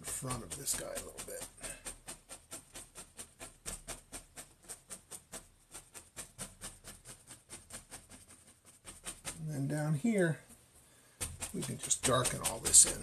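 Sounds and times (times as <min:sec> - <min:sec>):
brush tapping on canvas: 0:00.0 - 0:13.0.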